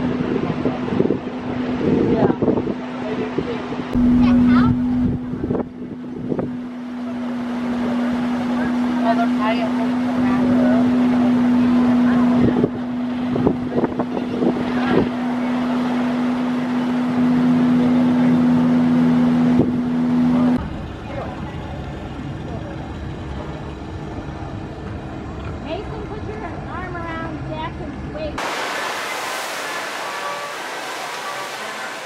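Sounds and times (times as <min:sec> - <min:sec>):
boat engine droning: 0:00.0 - 0:32.0.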